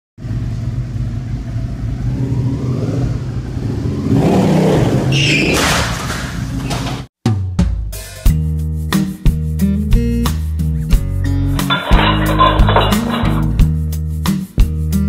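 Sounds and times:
motorcycle engine revving: 0.2s - 5.5s.

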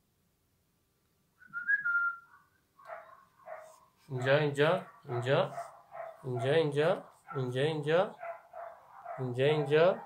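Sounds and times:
short whistle: 1.4s - 2.3s.

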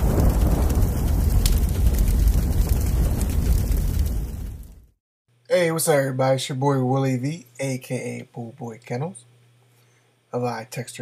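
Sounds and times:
low thunder-like rumble: 0.0s - 5.0s
sharp crackle: 0.0s - 5.0s.

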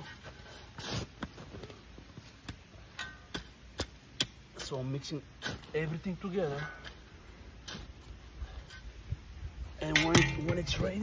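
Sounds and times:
shovel scraping soil: 0.0s - 1.5s, 5.4s - 9.0s.

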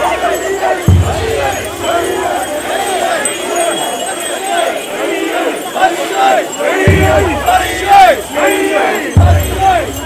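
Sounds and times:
crowd shouting together: 0.0s - 10.0s.

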